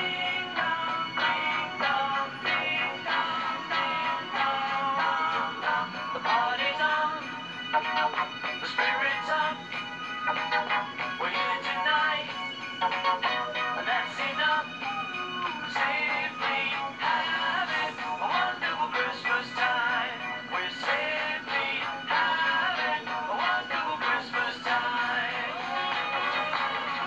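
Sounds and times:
song on radio: 0.0s - 27.0s.

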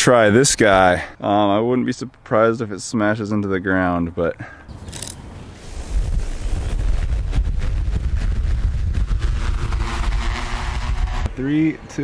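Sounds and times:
rotor downwash buffeting microphone: 5.0s - 12.0s
drone propeller hum: 6.5s - 11.4s.

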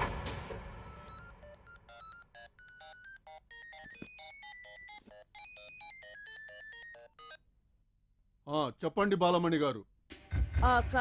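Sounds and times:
mobile phone ringtone: 0.7s - 7.5s.

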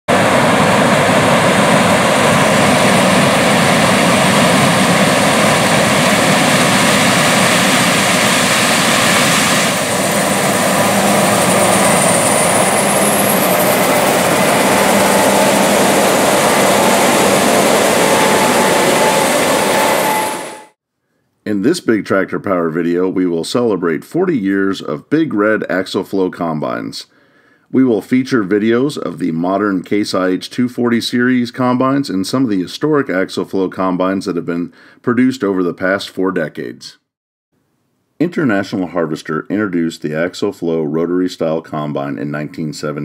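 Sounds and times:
combine harvester engine droning: 0.1s - 20.7s
faint rising whistle: 9.7s - 20.8s.

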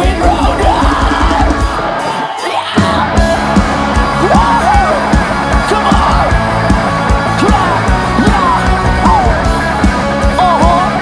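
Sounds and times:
live rock band playing: 0.0s - 11.0s
singer's voice: 0.0s - 11.0s.

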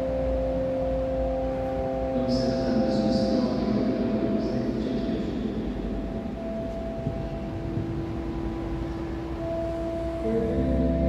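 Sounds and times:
pipe organ chords: 0.0s - 11.0s.

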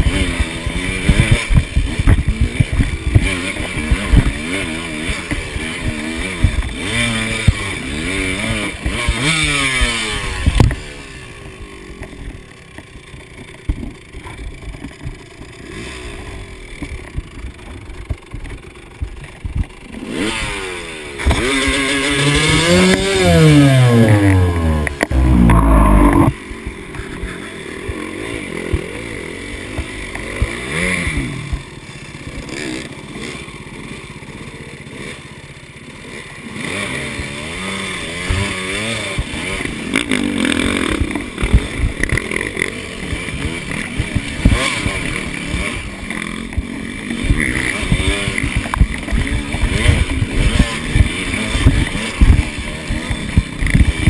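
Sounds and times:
motorbike engine revving: 0.0s - 54.0s.

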